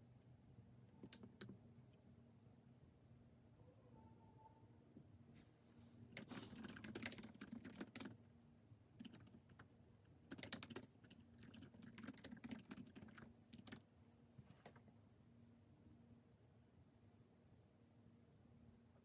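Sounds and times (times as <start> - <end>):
typing on laptop keyboard: 6.1 - 8.2, 9.0 - 13.9.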